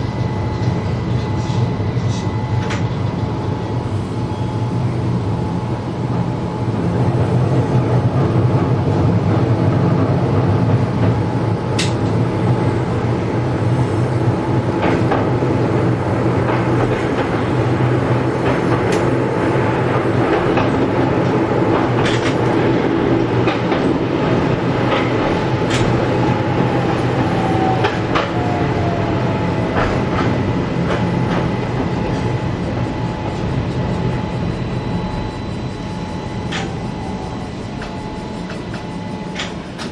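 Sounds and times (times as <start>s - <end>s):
train running hum: 0.0s - 39.9s.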